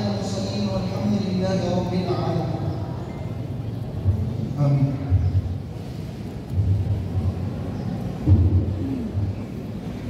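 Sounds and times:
muffled amplified voice echoing: 0.0s - 5.6s, 6.6s - 10.0s.

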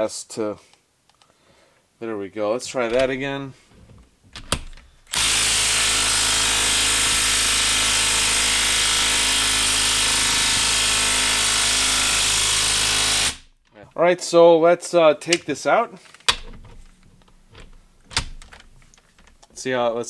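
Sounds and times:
impact wrench hammering: 4.9s - 13.5s.

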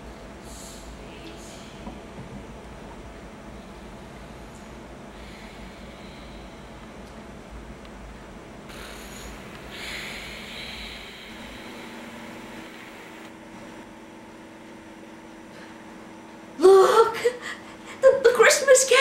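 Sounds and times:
woman breathing softly: 0.4s - 2.0s, 3.5s - 7.0s, 8.7s - 13.3s.

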